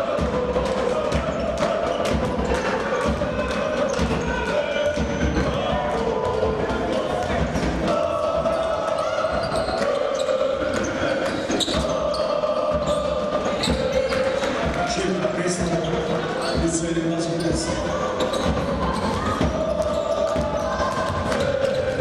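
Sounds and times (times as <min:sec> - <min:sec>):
voices in a large hall: 0:00.0 - 0:22.0.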